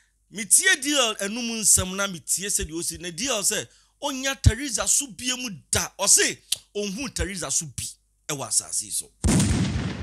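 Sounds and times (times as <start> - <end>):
loud boom: 9.2 - 10.0.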